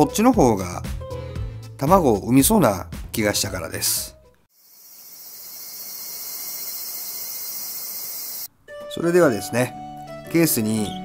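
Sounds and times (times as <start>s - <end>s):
high-pitched insect chorus: 4.6s - 8.5s.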